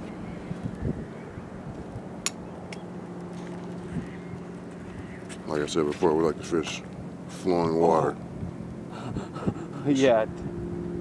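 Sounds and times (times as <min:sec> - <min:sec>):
faint wind noise: 0:00.0 - 0:11.0
low mechanical hum: 0:00.0 - 0:11.0.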